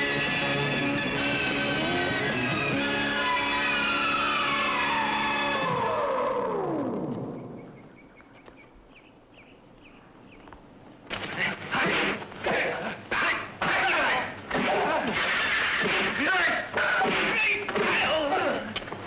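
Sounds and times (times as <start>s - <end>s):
film score music: 0.0s - 8.0s.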